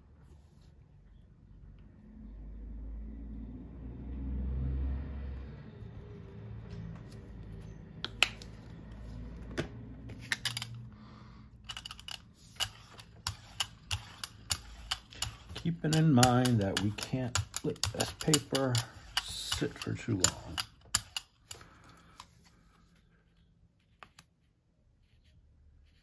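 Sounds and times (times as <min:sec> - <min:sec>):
brayer rolling tacky paint: 0:12.0 - 0:21.2.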